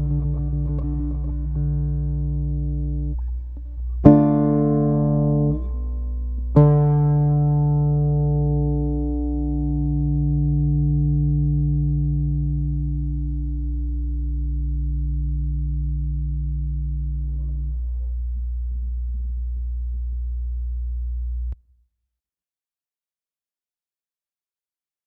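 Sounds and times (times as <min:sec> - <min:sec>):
low drone: 0:00.0 - 0:06.5
humming tone with overtones: 0:00.0 - 0:21.6.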